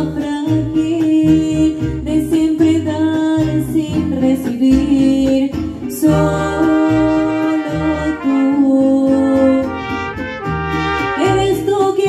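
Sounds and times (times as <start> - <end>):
person singing: 0.0 - 10.0, 10.8 - 12.0
strummed guitars: 0.0 - 12.0
brass holding long notes: 6.6 - 11.5.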